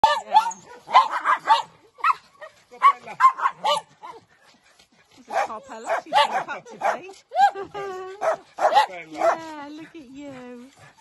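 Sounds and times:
small dogs barking and yipping: 0.0 - 9.6.

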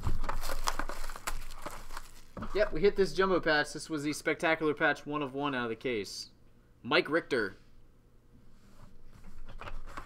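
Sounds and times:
wrapper and cardboard rustling: 0.0 - 2.8.

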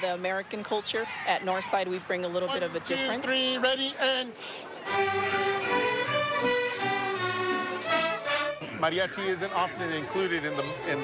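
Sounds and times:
violins playing melody: 4.8 - 11.0.

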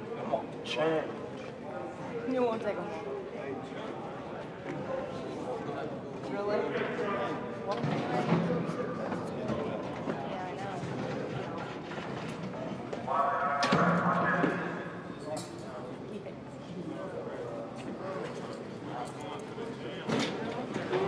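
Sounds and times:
young men talking and calling out: 13.0 - 16.4.

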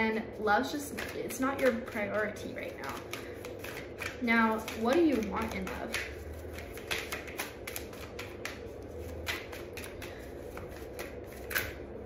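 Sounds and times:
cards being shuffled: 0.9 - 11.9.

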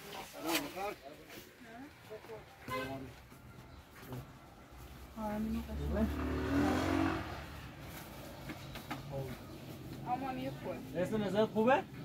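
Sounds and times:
vehicle accelerating past: 5.3 - 8.2.

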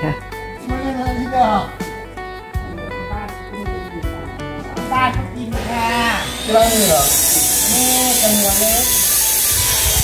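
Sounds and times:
high-pitched buzzing hiss: 5.6 - 10.0.

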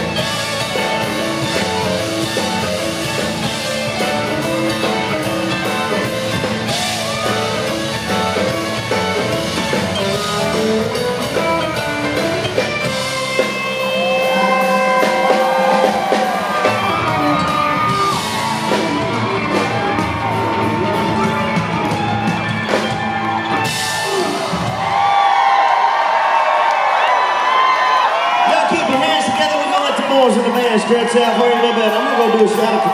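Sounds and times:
crowd cheering and whooping: 0.0 - 11.0, 12.6 - 32.9
country band playing: 0.0 - 25.3, 28.1 - 32.9.

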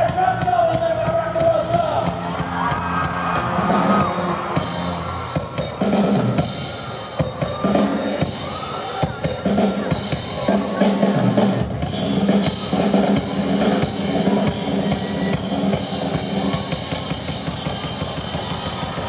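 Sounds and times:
bass line: 0.0 - 7.0
live rock band playing: 0.0 - 19.0.

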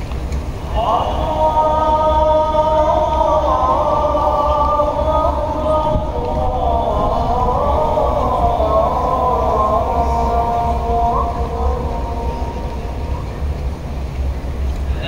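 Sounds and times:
call to prayer over loudspeakers: 0.4 - 15.0.

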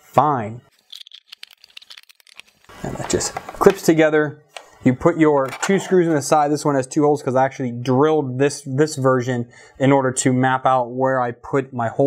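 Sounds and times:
plastic parts clicking together: 0.8 - 3.8.

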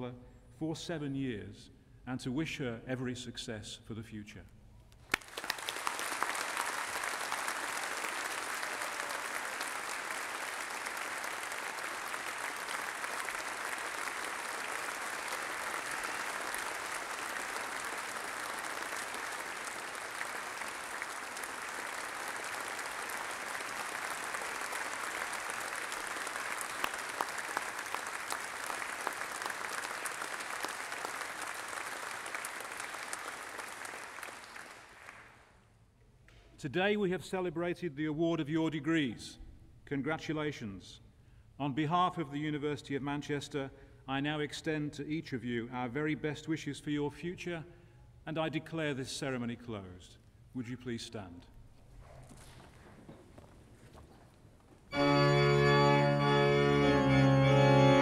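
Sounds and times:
audience applauding: 5.1 - 35.5, 55.0 - 58.0.

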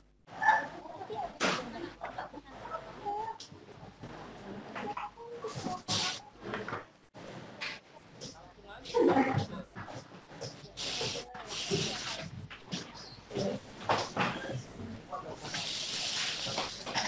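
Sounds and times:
hissy bursts: 10.7 - 12.3, 15.4 - 17.0.

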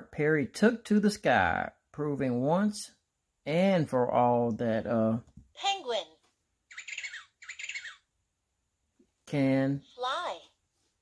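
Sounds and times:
recorded penguin call from toy: 6.7 - 8.1.

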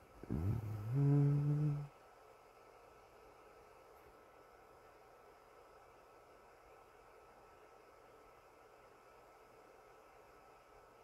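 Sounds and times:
man humming: 0.2 - 1.9.

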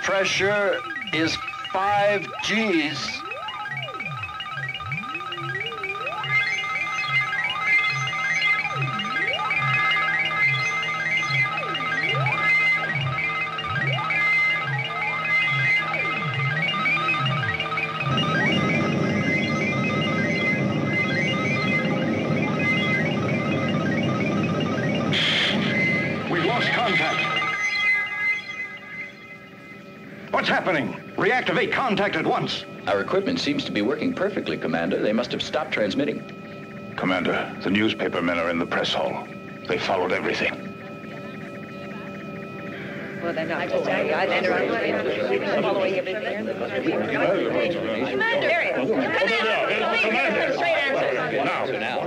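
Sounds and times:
electronic science-fiction soundtrack: 0.0 - 52.0.

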